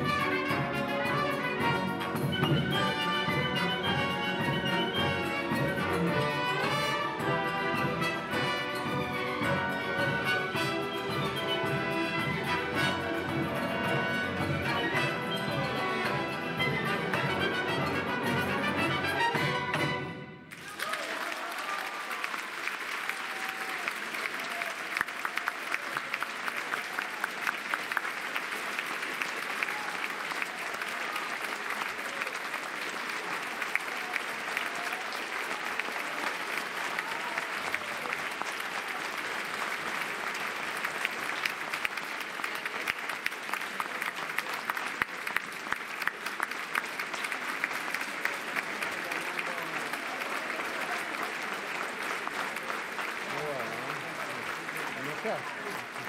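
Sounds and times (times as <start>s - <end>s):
audience applauding: 0.0s - 56.0s.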